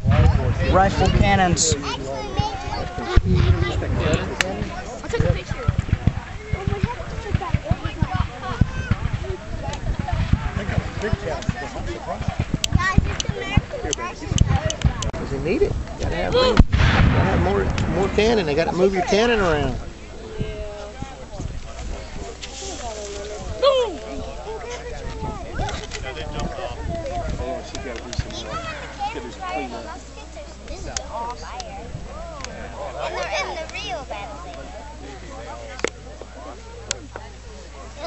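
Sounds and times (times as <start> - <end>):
low thuds: 0.0 - 24.4
people talking: 0.0 - 38.0
low thump: 16.6 - 18.4.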